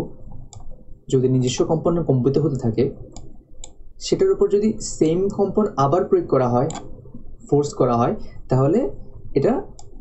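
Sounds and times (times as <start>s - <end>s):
man speaking: 1.1s - 3.0s, 4.0s - 6.8s, 7.4s - 9.8s.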